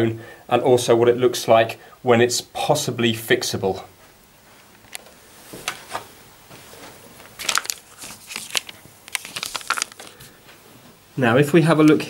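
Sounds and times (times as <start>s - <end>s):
paper rustling and crinkling: 5.5s - 10.4s.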